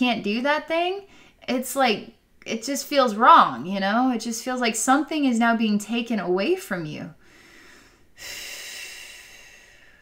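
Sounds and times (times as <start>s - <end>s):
woman breathing out: 7.2s - 10.0s.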